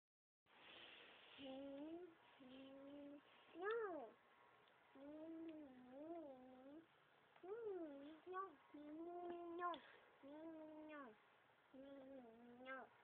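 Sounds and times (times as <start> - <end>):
child's wavering vocal notes: 1.4 - 4.2, 5.0 - 13.0.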